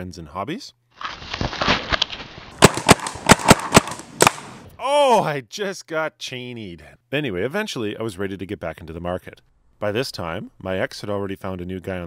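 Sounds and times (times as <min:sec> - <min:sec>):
paintball markers firing: 0:02.5 - 0:04.6.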